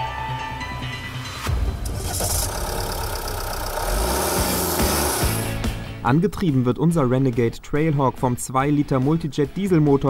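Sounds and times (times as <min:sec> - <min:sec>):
background music: 0:00.0 - 0:10.0
diesel engine starting and running: 0:01.3 - 0:06.1.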